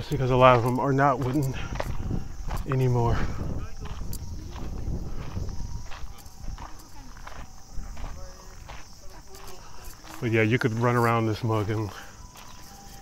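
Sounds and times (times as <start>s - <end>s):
footsteps on dirt path: 0.0s - 13.0s.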